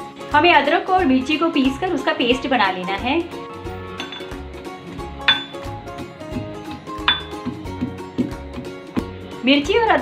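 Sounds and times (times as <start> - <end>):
background music: 0.0 - 10.0
pestle clinking in metal mortar: 4.0 - 4.5, 5.2 - 5.8, 7.0 - 7.6.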